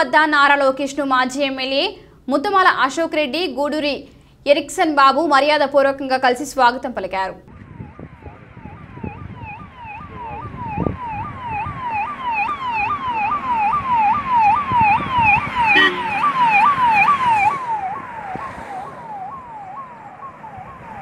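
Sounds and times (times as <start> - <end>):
electronic siren yelp: 7.5 - 21.0
vehicle horn toot: 15.8 - 16.2.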